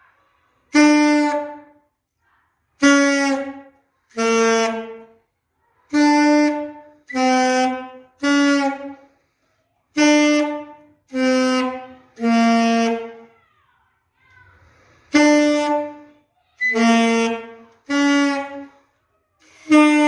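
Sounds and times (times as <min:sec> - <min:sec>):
saxophone notes: 0:02.8 - 0:05.1, 0:05.9 - 0:09.0, 0:10.0 - 0:13.3, 0:15.1 - 0:18.8, 0:19.5 - 0:20.0.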